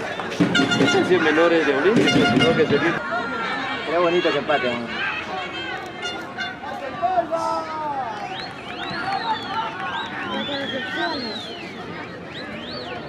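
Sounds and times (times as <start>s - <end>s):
people shouting and calling: 0.0s - 8.1s.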